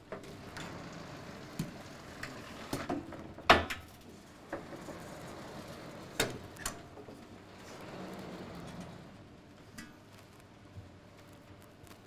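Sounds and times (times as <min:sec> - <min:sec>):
panel sliding rumble: 0:04.4 - 0:09.2.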